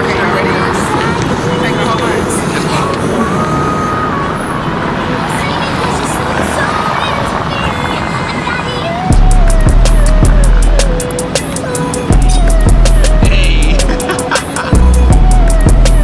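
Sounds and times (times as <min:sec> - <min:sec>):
indistinct voices talking: 0:00.0 - 0:16.0
traffic rumble: 0:00.0 - 0:16.0.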